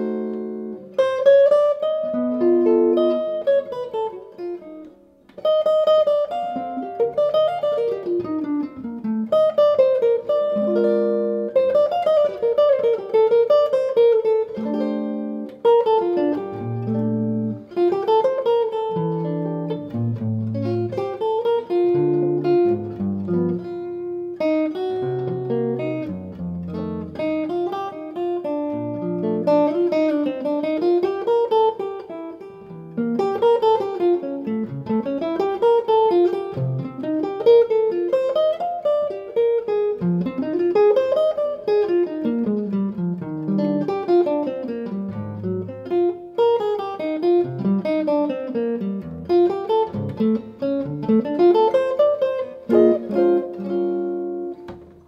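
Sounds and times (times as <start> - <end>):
electric guitar playing jazz: 0.0 - 55.0.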